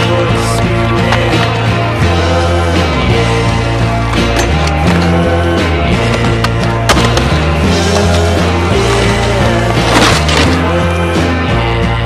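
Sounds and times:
music soundtrack: 0.0 - 12.0
skateboard trucks grinding on concrete: 3.9 - 11.4
skateboard clacks: 6.0 - 9.9.

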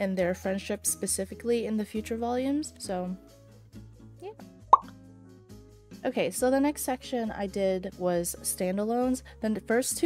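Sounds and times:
soft background music: 0.0 - 10.0
people talking: 6.0 - 10.0.

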